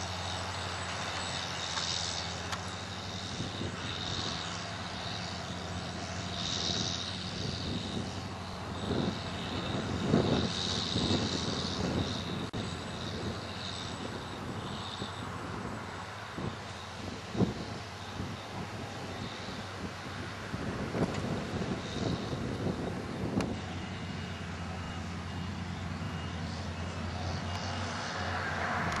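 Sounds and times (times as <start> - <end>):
harvester diesel engine droning: 0.0 - 29.0.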